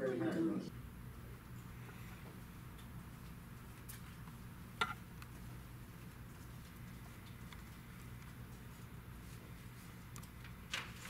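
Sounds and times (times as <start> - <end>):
steady low hum: 0.0 - 10.8.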